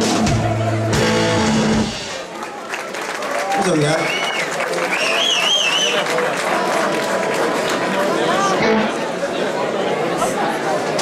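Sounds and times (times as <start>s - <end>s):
audience applauding: 1.9s - 8.8s
warbling whistle from crowd: 4.0s - 6.0s.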